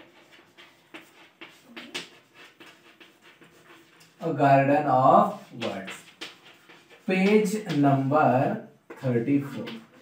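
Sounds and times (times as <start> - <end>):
chalk scratching on chalkboard: 0.0 - 10.0.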